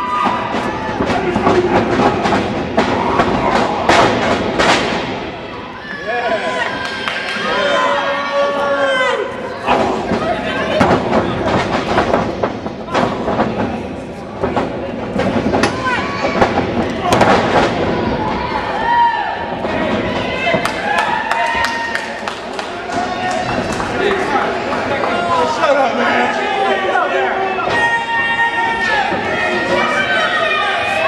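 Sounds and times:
crowd rumble: 0:00.0 - 0:31.0
people shouting: 0:05.5 - 0:11.0, 0:15.6 - 0:22.0, 0:22.8 - 0:31.0.

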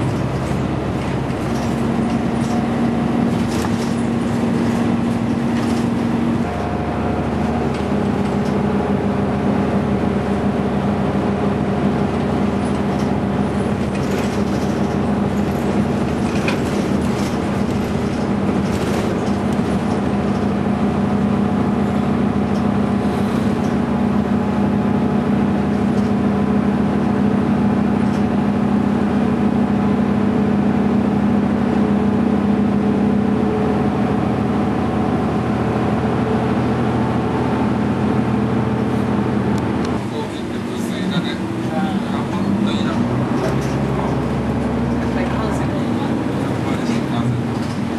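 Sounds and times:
bus engine running: 0:00.0 - 0:47.9
road noise: 0:00.0 - 0:47.9.

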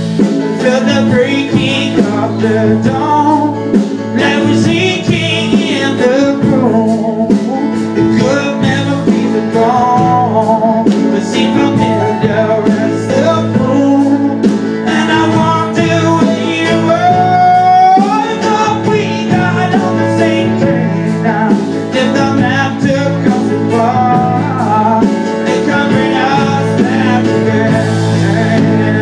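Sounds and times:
electric keyboard: 0:00.0 - 0:29.0
man singing: 0:00.0 - 0:29.0
second guitar: 0:00.0 - 0:29.0.

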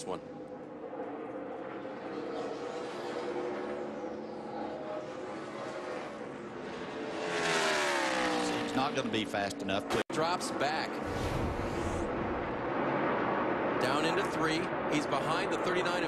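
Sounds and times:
race car engines droning: 0:00.0 - 0:16.0
race car passing close: 0:00.3 - 0:16.0.

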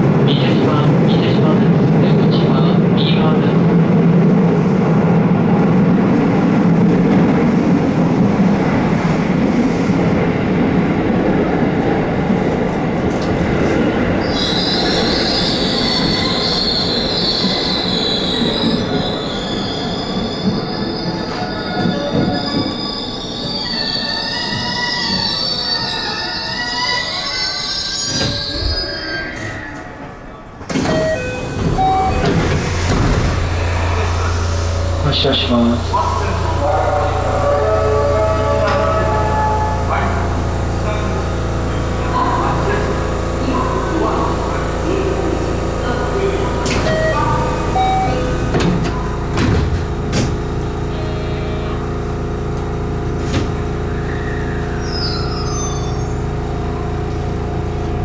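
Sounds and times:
falling whine of train: 0:00.0 - 0:58.0
electric train running: 0:30.7 - 0:58.0
high ringing tones: 0:30.9 - 0:32.7.

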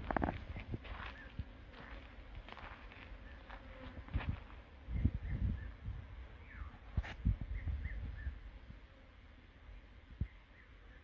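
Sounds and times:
flying insect buzzing: 0:00.0 - 0:11.0.

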